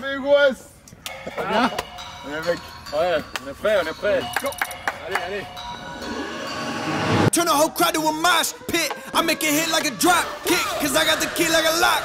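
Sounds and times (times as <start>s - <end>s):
rapper vocal ad-libs: 7.3s - 12.0s.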